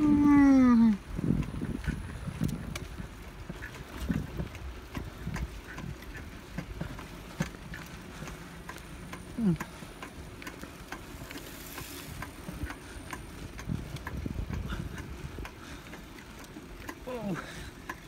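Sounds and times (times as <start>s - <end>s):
wind on microphone: 0.0s - 7.0s, 12.0s - 15.8s
light regular ticking: 0.0s - 18.0s
tyres rumbling on concrete: 0.0s - 18.0s.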